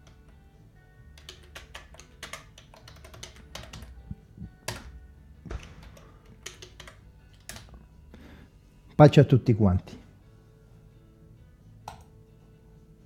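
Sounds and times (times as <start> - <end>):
computer keyboard typing: 1.2 - 4.9, 5.5 - 7.7.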